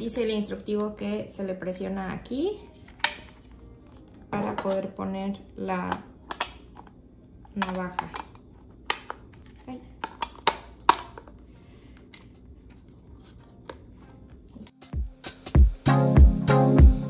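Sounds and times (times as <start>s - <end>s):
music with steady beat: 14.8s - 17.0s.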